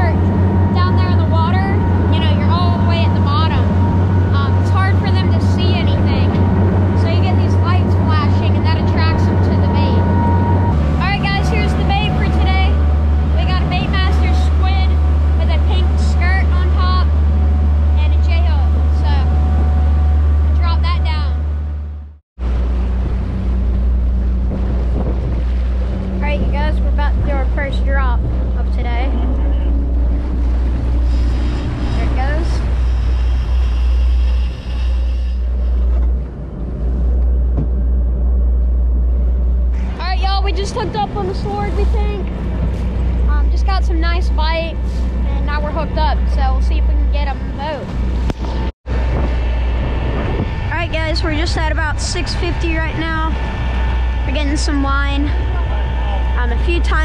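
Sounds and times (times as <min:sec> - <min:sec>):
indistinct voices: 0:00.0 - 0:21.5, 0:26.2 - 0:35.7, 0:50.3 - 0:57.0
boat engine rumble: 0:00.0 - 0:57.0
water rushing past hull: 0:00.0 - 0:57.0.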